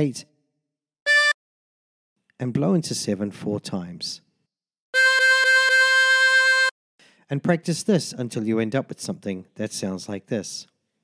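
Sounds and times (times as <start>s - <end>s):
harmonica notes: 1.1s - 1.4s, 5.0s - 6.7s.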